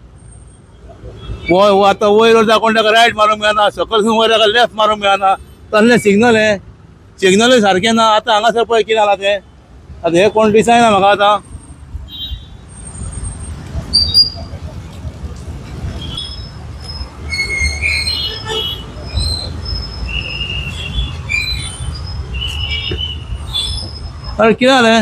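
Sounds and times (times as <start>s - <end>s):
street traffic rumble: 0.0s - 25.0s
high-pitched squeaks: 12.8s - 15.0s, 15.8s - 25.0s.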